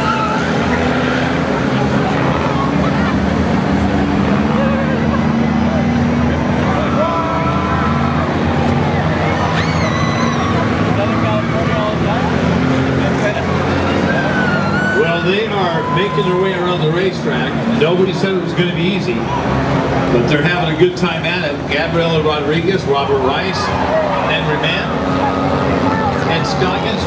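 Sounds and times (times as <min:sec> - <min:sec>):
race car engines: 0:00.0 - 0:27.0.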